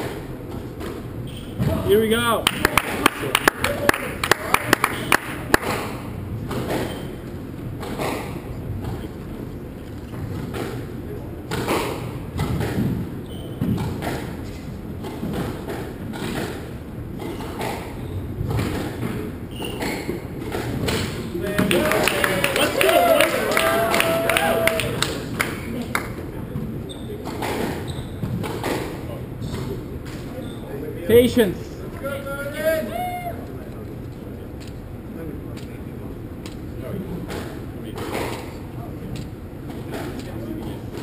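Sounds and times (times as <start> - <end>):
squash ball hitting rackets and walls: 0.0 - 2.0, 4.4 - 9.1, 10.1 - 21.7, 25.0 - 30.4, 37.2 - 38.7.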